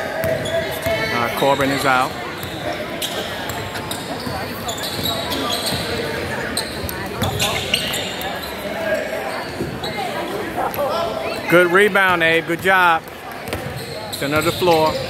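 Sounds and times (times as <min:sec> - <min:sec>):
murmur of voices: 0:00.0 - 0:15.0
sneaker squeaks: 0:00.2 - 0:12.4, 0:13.4 - 0:15.0.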